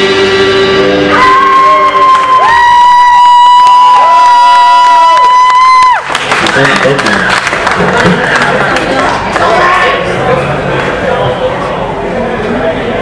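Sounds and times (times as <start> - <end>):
low bending guitar notes: 0.0 - 2.4
high guitar feedback tone: 0.0 - 3.8.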